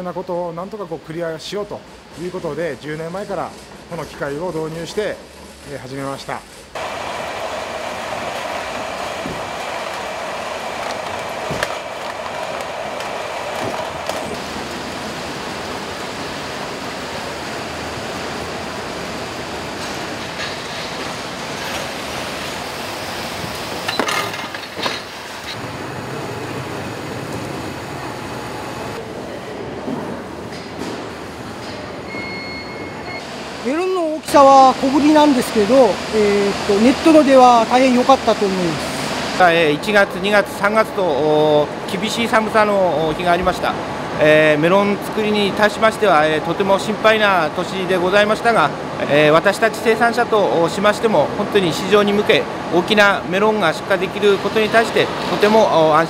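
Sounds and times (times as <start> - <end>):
roller conveyors running: 0.6 - 56.0
carton-sealing machine: 6.8 - 16.4.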